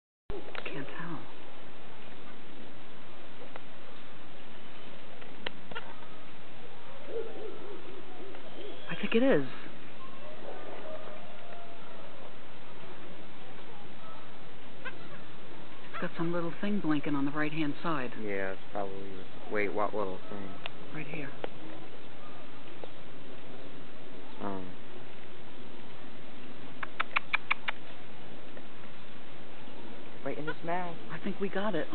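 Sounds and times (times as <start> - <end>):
background hiss: 0.3 - 31.9
low repeated hooting: 5.7 - 16.1
animal squeaky chirps: 8.4 - 9.2, 14.8 - 15.3, 26.8 - 27.9
faint clicks: 26.8 - 27.9.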